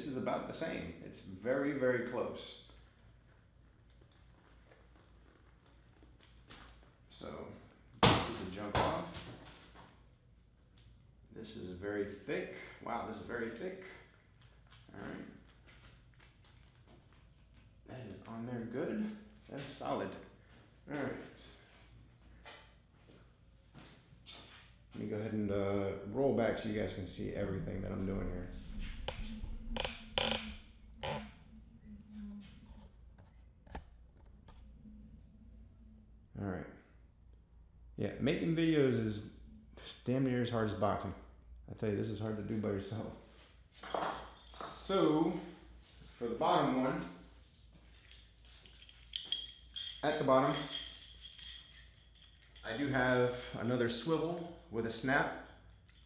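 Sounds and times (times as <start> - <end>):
faint low hum: 0.0 - 56.0.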